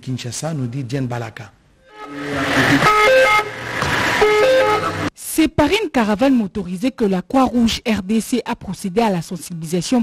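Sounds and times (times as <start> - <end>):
emergency vehicle siren: 1.9 - 5.1.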